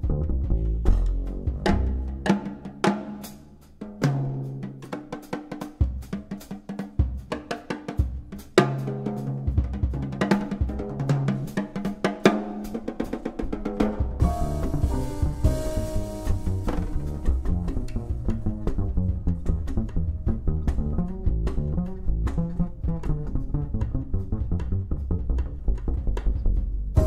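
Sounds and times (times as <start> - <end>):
double bass walking notes: 0.0 - 2.2, 14.2 - 27.0
jazz drum kit: 0.0 - 27.0.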